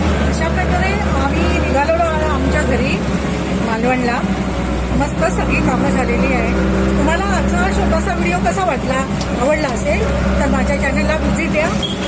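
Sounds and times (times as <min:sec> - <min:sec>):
woman talking: 0:00.0 - 0:11.8
auto-rickshaw engine running: 0:00.0 - 0:12.0.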